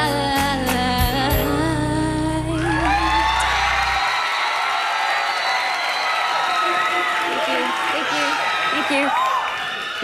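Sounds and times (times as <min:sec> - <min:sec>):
band backing: 0:00.0 - 0:04.0
audience cheering and whooping: 0:02.5 - 0:10.0.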